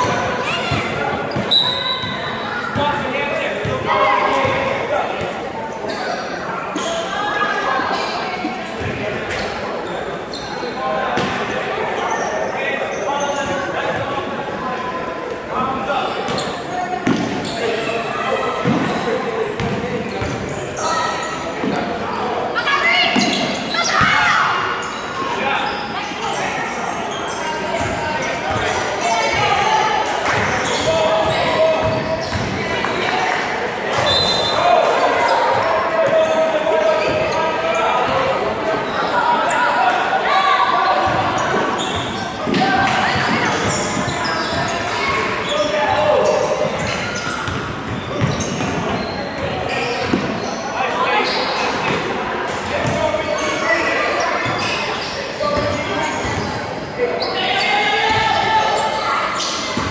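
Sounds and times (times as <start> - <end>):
echoing indistinct voices: 0.0 - 59.9.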